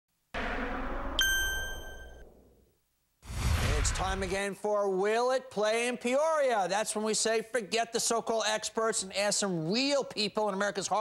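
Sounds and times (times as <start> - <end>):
rushing noise: 0.4 - 2.6, 3.2 - 4.4
bell-like ding: 1.2 - 2.4.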